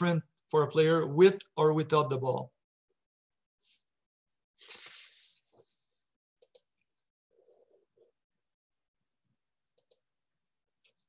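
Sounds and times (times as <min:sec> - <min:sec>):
computer mouse clicks: 0:06.4 - 0:06.8, 0:09.8 - 0:10.1.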